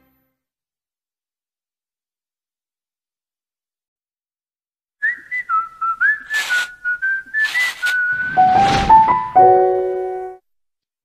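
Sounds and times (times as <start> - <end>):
whistled tune: 5.0 - 9.5
brief swishes: 6.2 - 6.8, 7.4 - 9.3
rising whoosh: 7.5 - 9.4.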